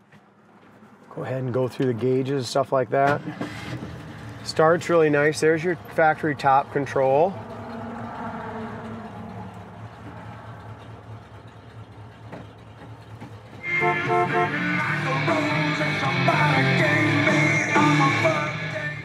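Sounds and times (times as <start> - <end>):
car engine idling hum: 3.4 - 19.0
rock music on car radio: 13.6 - 19.0.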